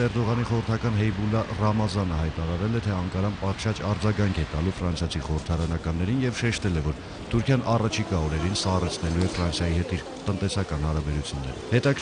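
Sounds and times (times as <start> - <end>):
man narrating news: 0.0 - 12.0.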